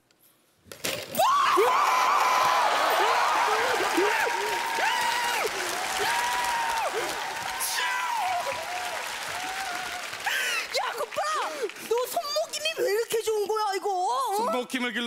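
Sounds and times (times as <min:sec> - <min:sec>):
audience applauding and cheering: 0:01.2 - 0:13.0
excited shouting: 0:01.2 - 0:13.0.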